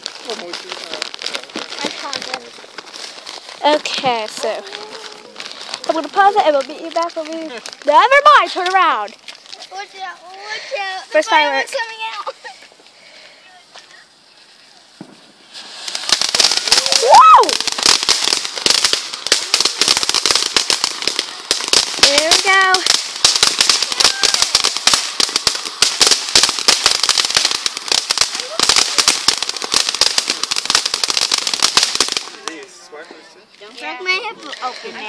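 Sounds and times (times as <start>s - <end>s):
firework crackling: 0.0s - 35.0s.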